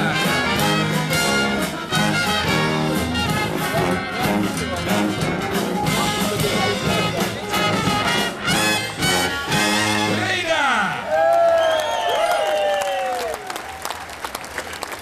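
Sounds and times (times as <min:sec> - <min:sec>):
sousaphone bass line: 0:00.0 - 0:10.2
jazz band playing: 0:00.0 - 0:10.5.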